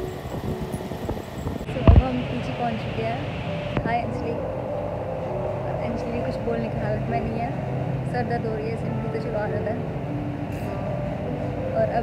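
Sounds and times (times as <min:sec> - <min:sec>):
low fan hum: 0:00.0 - 0:12.0
indistinct voices: 0:01.2 - 0:04.6.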